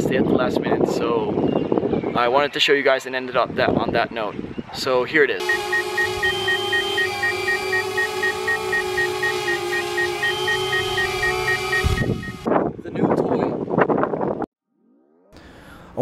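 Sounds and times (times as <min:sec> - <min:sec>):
drone propellers whining: 0:05.4 - 0:12.5.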